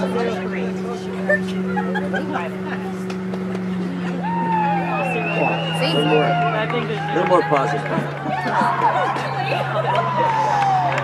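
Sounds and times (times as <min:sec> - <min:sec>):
people calling and chattering: 0:00.0 - 0:11.0.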